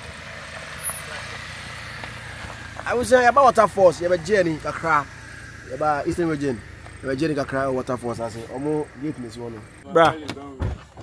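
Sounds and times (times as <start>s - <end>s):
engine idling low rumble: 0.0s - 10.1s.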